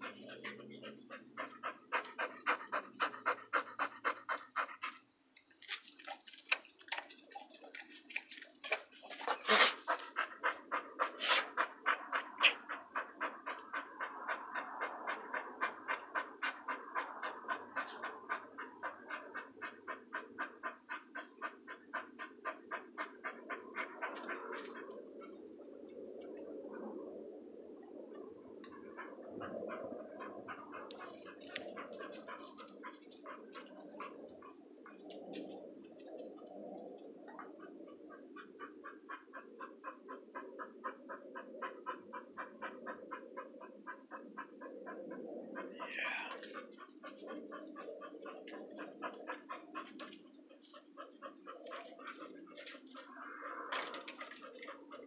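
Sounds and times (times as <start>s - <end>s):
dog panting: 0.0s - 25.9s, 28.6s - 55.0s.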